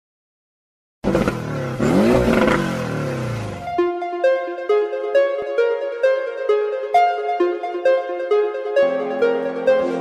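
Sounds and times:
revving engine-like sound effect: 1.0 - 3.7
keyboard music notes: 1.8 - 10.0.

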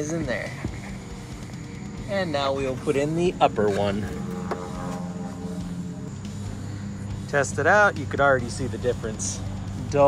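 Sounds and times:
lawnmower engine running: 0.0 - 10.0.

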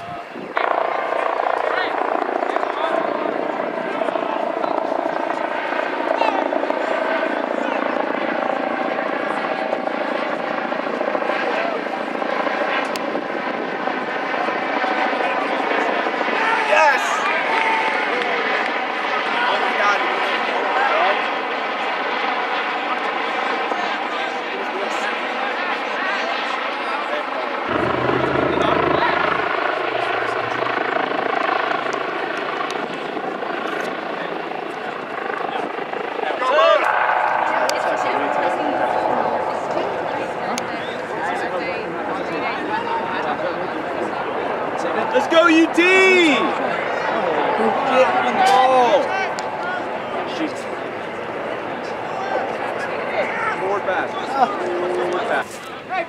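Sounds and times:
mechanical engine drone: 27.7 - 32.0, 36.8 - 41.4
people shouting: 45.2 - 46.6.

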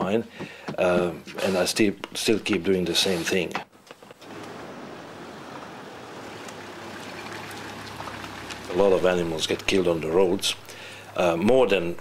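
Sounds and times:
tyres and engine hiss: 1.4 - 1.9, 4.2 - 11.4.

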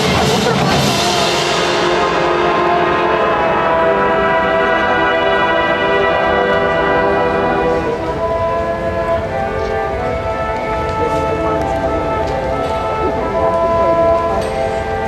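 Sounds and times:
marching band brass chords: 0.0 - 15.0.

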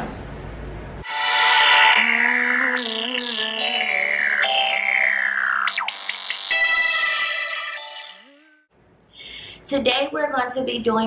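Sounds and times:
intro music with pitch sweeps: 1.0 - 8.6.

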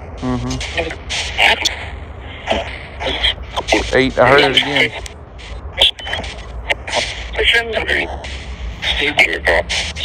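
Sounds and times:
bursts of static: 0.0 - 10.0
low hum: 0.0 - 10.0
snatches of broadcast voices: 0.2 - 10.0.

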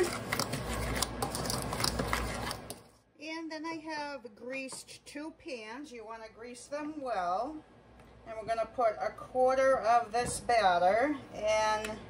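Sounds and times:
metal spoon scraping a bowl: 0.0 - 2.8.

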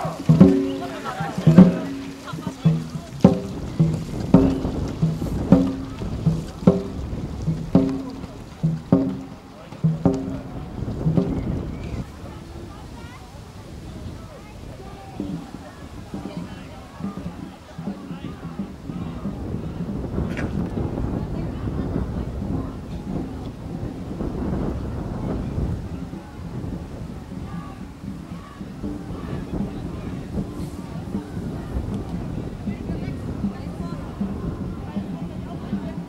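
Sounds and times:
crew shouting stroke call: 0.0 - 10.5
water wash from paddling: 0.0 - 36.0
wind buffeting microphone: 0.0 - 36.0.

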